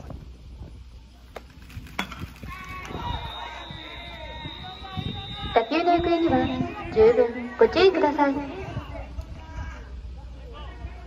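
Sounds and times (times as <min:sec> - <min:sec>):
distant voices: 0:00.8 - 0:11.0.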